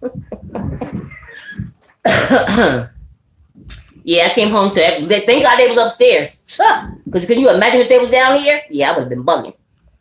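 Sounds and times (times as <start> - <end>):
throat and breath sounds: 0.0 - 2.0
woman coughing: 1.3 - 3.0.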